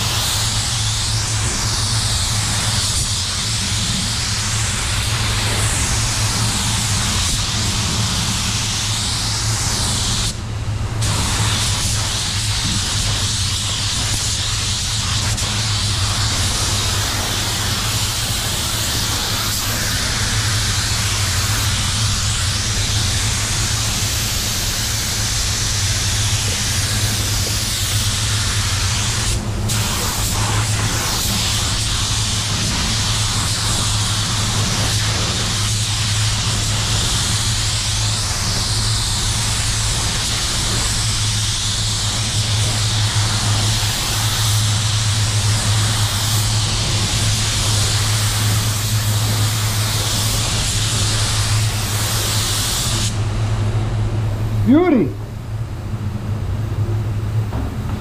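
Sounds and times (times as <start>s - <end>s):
paint spray gun hissing: 0.0s - 53.2s
low air handling hum: 0.0s - 58.0s.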